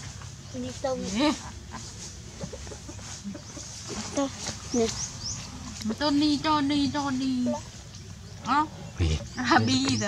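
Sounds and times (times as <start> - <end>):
woman speaking: 5.8 - 7.7, 9.4 - 10.0.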